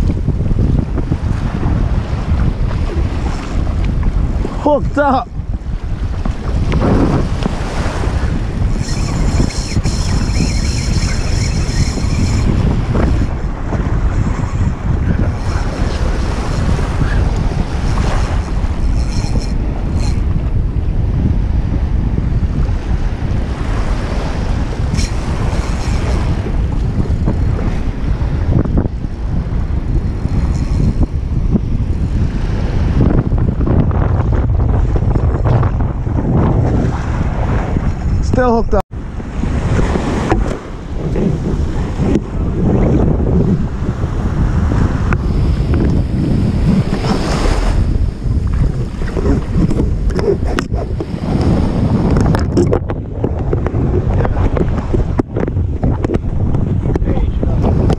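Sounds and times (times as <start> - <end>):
wind buffeting microphone: 0.0 - 57.9
high steady whirr: 8.7 - 13.2
small waves in surf: 39.0 - 57.9.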